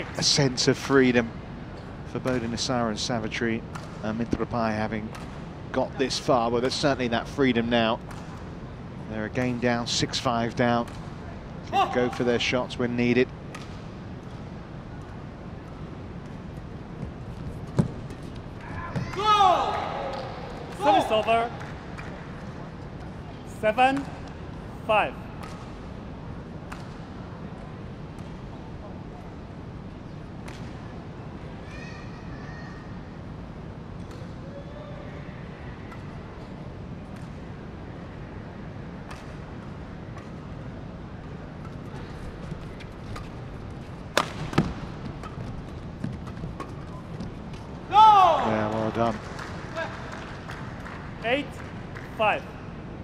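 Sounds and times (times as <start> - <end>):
indoor arena hum: 0.0 - 53.0
loud shout: 11.7 - 12.1, 18.6 - 21.4, 47.9 - 48.6
racket hitting shuttlecock: 44.1 - 45.4.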